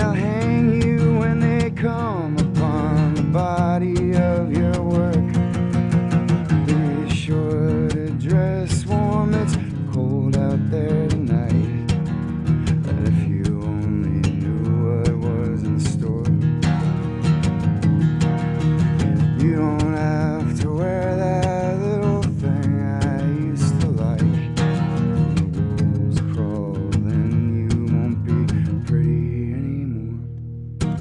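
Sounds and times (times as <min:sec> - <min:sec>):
man singing: 0:00.0 - 0:17.2, 0:17.8 - 0:31.0
acoustic guitar strumming: 0:00.0 - 0:31.0.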